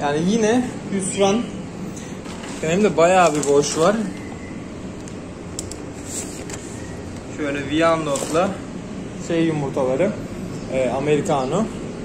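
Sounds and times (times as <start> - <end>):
egg incubators humming: 0.0 - 12.0.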